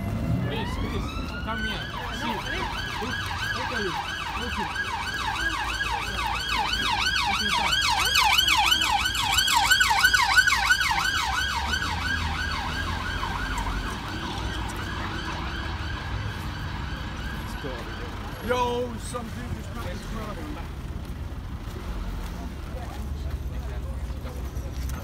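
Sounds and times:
traffic rumble: 0.0 - 25.0
siren yelping: 0.4 - 18.9.

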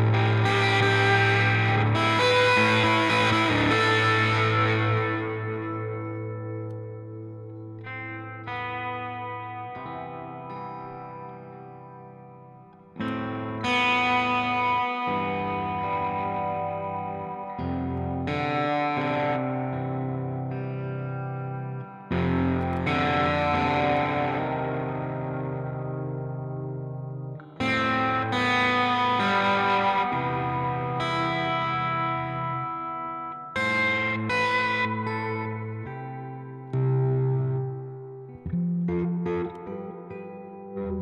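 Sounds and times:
overdriven electric guitar chords: 0.0 - 41.0.

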